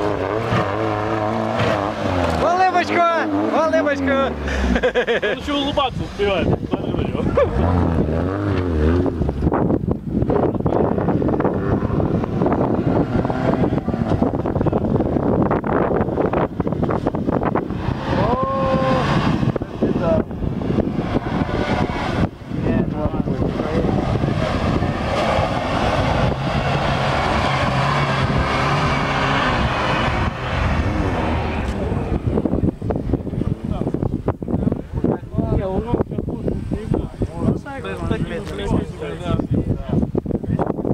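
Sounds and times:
off-road vehicle engine running: 0.0 - 40.9
wind on microphone: 5.6 - 40.9.

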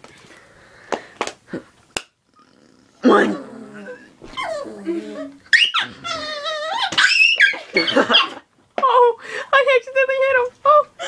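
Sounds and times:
small dog growling and yelping: 2.3 - 8.4.

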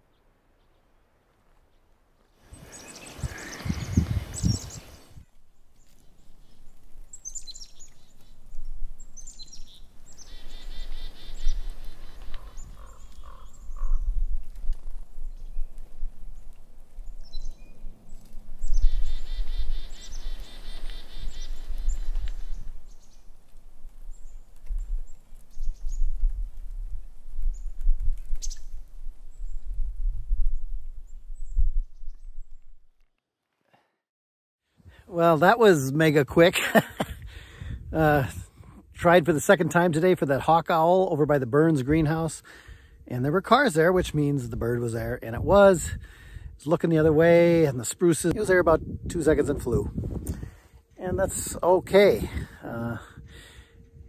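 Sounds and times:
small birds chirping: 1.6 - 26.4, 27.4 - 29.8
low wind rumble: 2.5 - 32.9, 36.9 - 39.5, 41.8 - 54.0.

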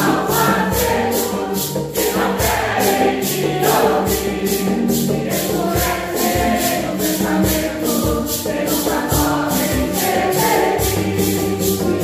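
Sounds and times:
hand drum: 0.0 - 12.0
mandolin: 0.0 - 12.0
mixed choir singing a hymn: 0.0 - 12.0
shaker beat: 0.0 - 12.0
strummed guitars: 0.0 - 12.0.

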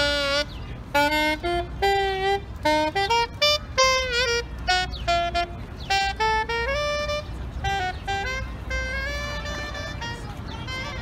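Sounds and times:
saxophone melody: 0.0 - 11.0.

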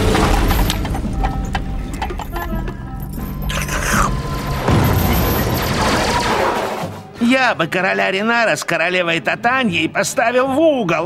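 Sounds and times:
cartoon soundtrack music: 0.1 - 8.8
explosions rumbling: 4.0 - 7.0.

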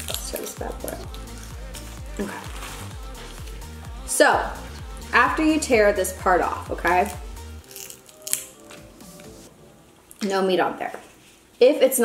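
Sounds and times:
crab shell cracking: 0.0 - 1.6, 7.1 - 9.3
faint background music: 0.0 - 12.0.

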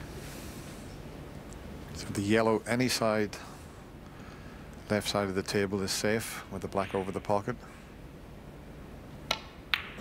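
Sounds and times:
snooker balls colliding click: 9.2 - 10.0
cue tip striking ball click: 9.3 - 10.0.

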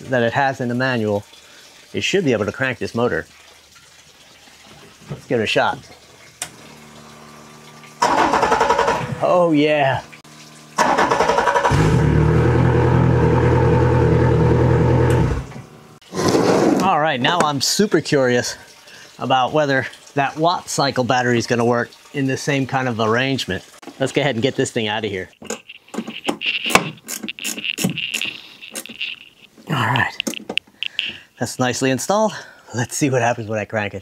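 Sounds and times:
man talking: 0.0 - 1.3, 1.9 - 3.3, 5.3 - 5.8, 9.2 - 10.1, 16.8 - 18.6, 19.2 - 25.4, 29.7 - 34.0
outboard motor starting and idling: 6.5 - 16.0
high-pitched drone: 25.6 - 31.2.

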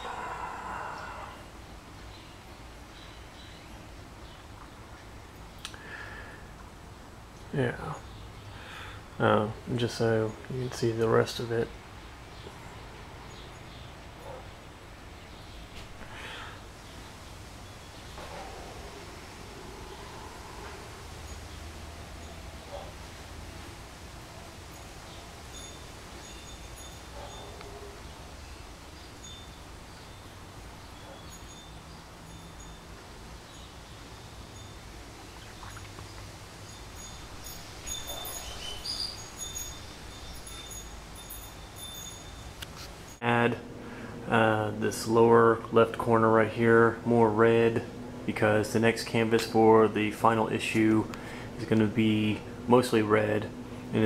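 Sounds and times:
low steady hum: 0.0 - 54.0.

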